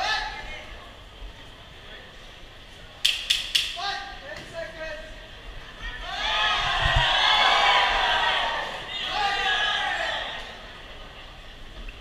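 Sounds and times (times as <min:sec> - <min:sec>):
crowd voices: 0:00.0 - 0:12.0
people shouting: 0:05.7 - 0:10.6.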